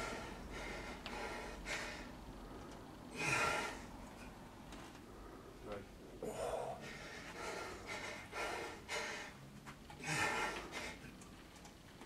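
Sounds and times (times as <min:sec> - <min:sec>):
man breathing hard: 0:00.0 - 0:04.4, 0:06.2 - 0:11.2.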